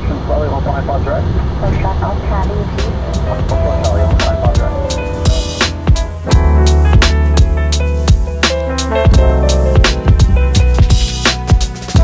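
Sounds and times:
radio speech: 0.0s - 5.1s
cockpit low rumble: 0.0s - 8.3s.

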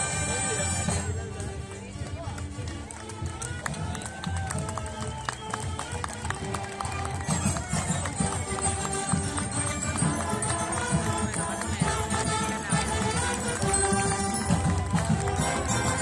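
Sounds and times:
marching band playing: 0.0s - 16.0s
onlookers talking: 0.0s - 16.0s.

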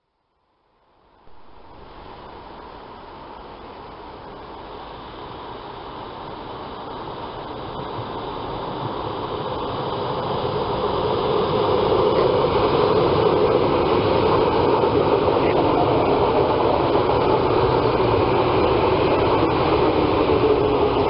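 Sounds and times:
train wheels rumbling on rails: 7.3s - 21.0s.

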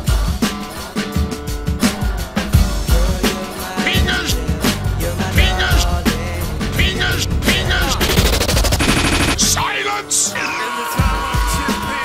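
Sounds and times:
stuttering looped rattle: 4.0s - 9.6s.

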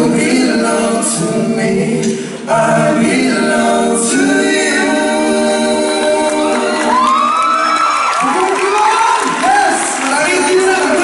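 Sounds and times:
men singing in harmony: 0.0s - 7.7s
audience cheering and screaming: 6.5s - 10.4s.

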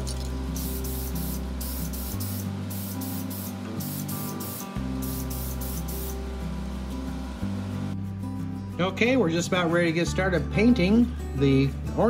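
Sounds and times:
background music: 0.0s - 12.0s
aerosol can hissing: 0.5s - 6.2s.

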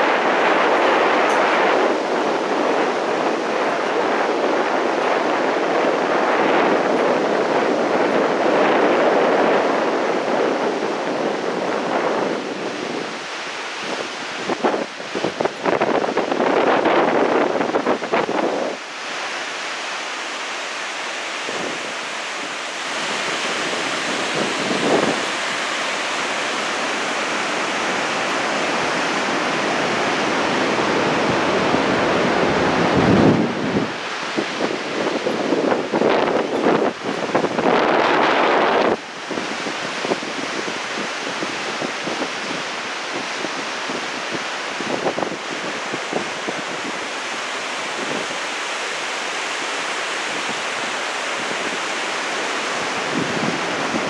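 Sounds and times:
wind buffeting microphone: 0.0s - 19.2s, 21.2s - 54.0s
whitewater river rushing: 0.0s - 54.0s.

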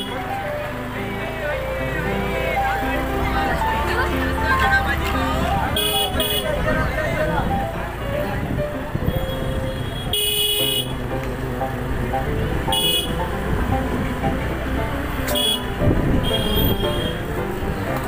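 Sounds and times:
vehicle horn beeping: 0.0s - 0.4s, 3.3s - 6.9s, 9.0s - 11.0s, 12.6s - 13.4s, 15.2s - 17.3s
music playing: 0.0s - 18.0s
street crowd chatter: 0.0s - 18.0s.

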